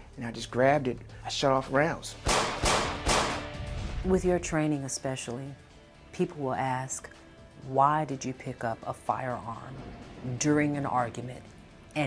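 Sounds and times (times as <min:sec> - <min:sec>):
faint steady music tone: 0:00.0 - 0:12.0
gunshots: 0:02.2 - 0:03.5.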